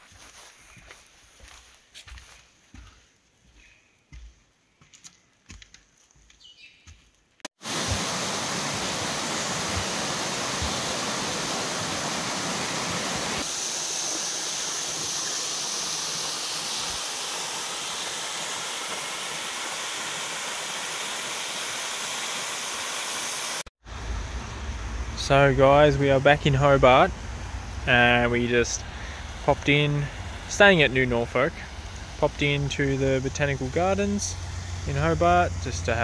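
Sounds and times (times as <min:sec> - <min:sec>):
waterfall rushing onto rocks: 0:07.6 - 0:23.7.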